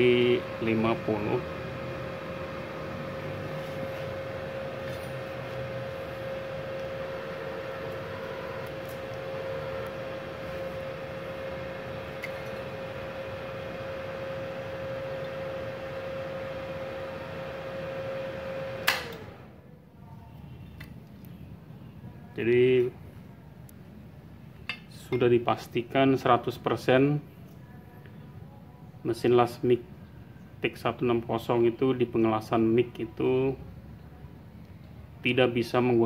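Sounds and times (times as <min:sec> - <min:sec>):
welder high whine: 0:00.0 - 0:19.6
welder fan hum: 0:00.0 - 0:36.0
breaker click: 0:18.8 - 0:19.4.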